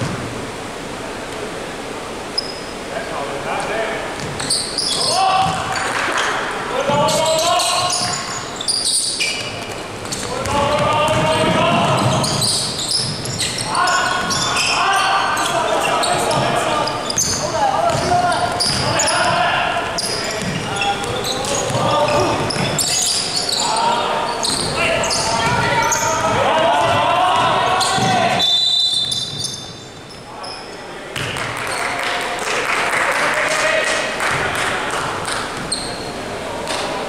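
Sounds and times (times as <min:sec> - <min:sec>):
basketball bouncing on court: 0:04.2 - 0:06.3, 0:09.2 - 0:14.7, 0:15.4 - 0:19.4, 0:20.0 - 0:23.0, 0:24.4 - 0:28.4, 0:31.2 - 0:31.7
players shouting: 0:04.9 - 0:08.4, 0:10.2 - 0:29.1.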